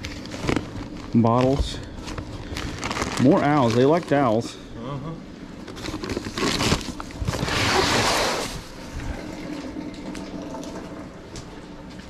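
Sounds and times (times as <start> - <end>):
plastic bag rustling: 0.0 - 4.5, 5.6 - 8.8.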